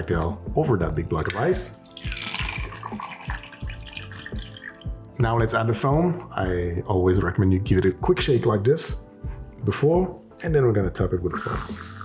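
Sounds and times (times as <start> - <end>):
background music with soft beat: 0.0 - 12.0
liquid trickling into a glass: 1.8 - 5.2.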